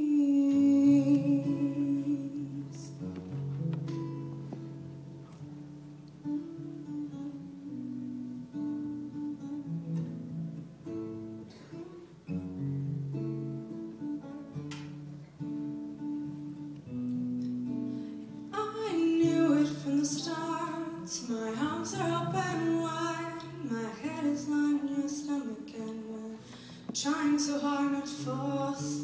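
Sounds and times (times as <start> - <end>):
woman singing: 0.0 - 3.3, 18.5 - 29.0
acoustic guitar playing: 0.0 - 29.0.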